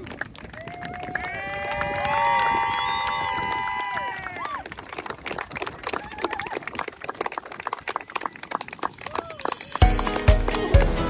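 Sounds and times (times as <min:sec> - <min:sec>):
people clapping and cheering: 0:00.0 - 0:11.0
whoops: 0:00.6 - 0:04.7, 0:05.8 - 0:06.7, 0:09.0 - 0:09.4.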